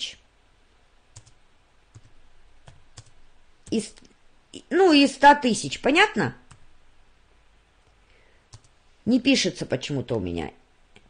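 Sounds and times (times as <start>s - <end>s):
computer mouse clicks: 1.1s - 1.4s, 7.8s - 8.8s.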